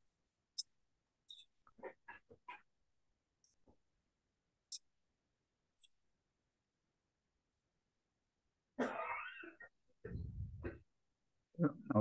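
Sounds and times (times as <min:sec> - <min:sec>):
person clearing throat: 0:08.8 - 0:09.7
person coughing: 0:08.8 - 0:09.7.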